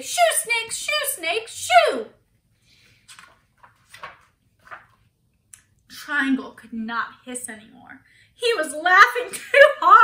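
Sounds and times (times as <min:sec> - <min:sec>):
book page turning: 0:02.9 - 0:05.1.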